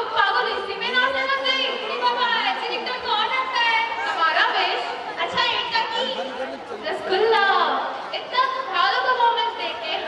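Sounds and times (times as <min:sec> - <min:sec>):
woman speaking over loudspeaker: 0:00.0 - 0:06.2
crowd chatter: 0:00.0 - 0:10.0.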